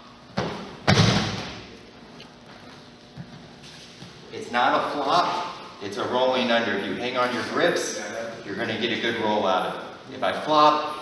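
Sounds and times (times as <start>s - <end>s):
soft scuffing on a mat: 2.4s - 4.3s.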